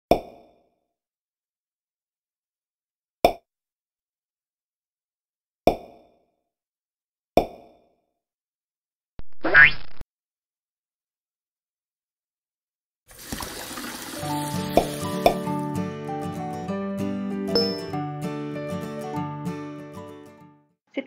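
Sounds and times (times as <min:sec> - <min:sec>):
cartoon plop sound effects: 0:09.2 - 0:10.0.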